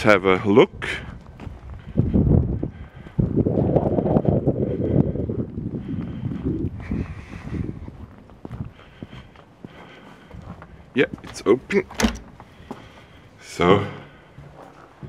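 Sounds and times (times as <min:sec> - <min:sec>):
wind buffeting microphone: 0:00.0 - 0:13.4
footsteps on paving stones: 0:00.0 - 0:15.0.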